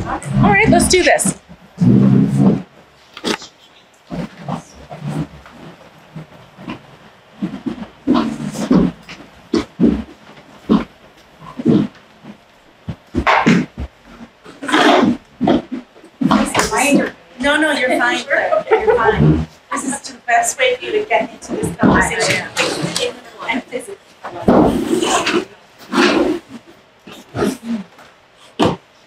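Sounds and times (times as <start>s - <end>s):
chairs scraping on hardwood floor: 0.0s - 3.5s, 13.1s - 20.0s, 20.6s - 23.6s, 24.2s - 26.7s.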